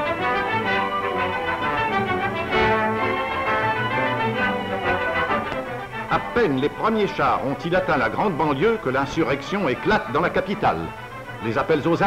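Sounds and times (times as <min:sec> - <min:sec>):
orchestral music with brass: 0:00.0 - 0:12.0.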